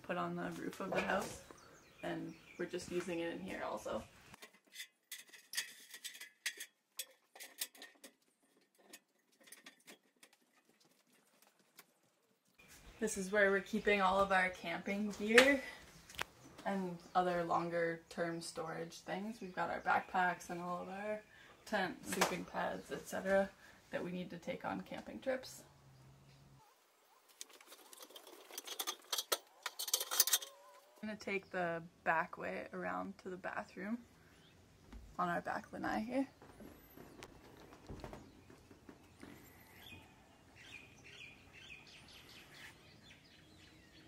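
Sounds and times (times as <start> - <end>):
hands and feet on metal ladder: 0.1 - 1.5, 4.4 - 11.8, 27.3 - 30.8.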